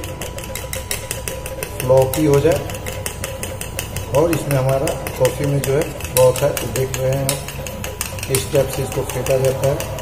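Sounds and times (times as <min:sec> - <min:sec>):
spoon beating paste in steel bowl: 0:00.0 - 0:10.0.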